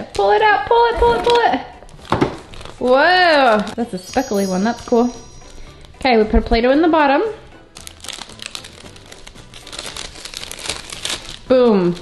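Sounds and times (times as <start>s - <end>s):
cellophane bag crinkling: 1.8s - 6.0s, 7.7s - 12.0s.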